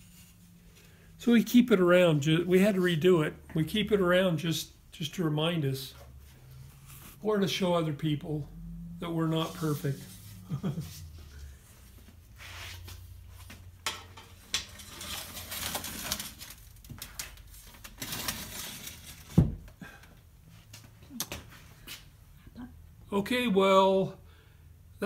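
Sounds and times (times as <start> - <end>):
glass sheet scraping in rack: 14.2 - 16.6, 18.0 - 19.3.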